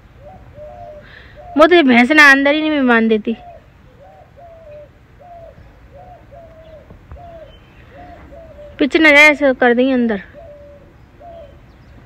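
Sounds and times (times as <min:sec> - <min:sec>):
dove cooing: 0:00.0 - 0:02.4, 0:03.0 - 0:11.9
woman speaking: 0:01.6 - 0:03.4, 0:08.8 - 0:10.4.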